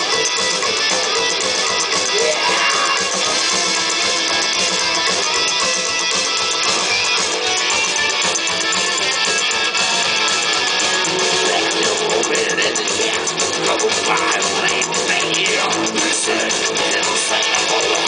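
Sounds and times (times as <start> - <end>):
band playing live: 0.0 - 18.0.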